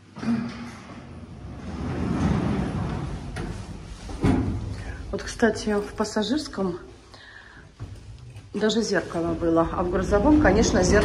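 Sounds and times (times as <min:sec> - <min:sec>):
lift doors sliding: 0:00.0 - 0:05.1.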